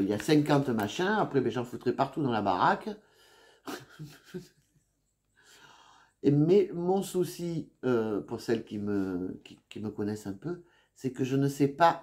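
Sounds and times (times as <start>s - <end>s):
woman chuckling softly: 3.7s - 5.0s.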